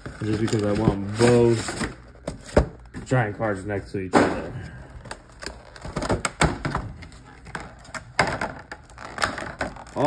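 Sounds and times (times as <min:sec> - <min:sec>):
plastic packaging crinkling: 0:00.0 - 0:03.2, 0:04.9 - 0:06.4, 0:07.0 - 0:10.0.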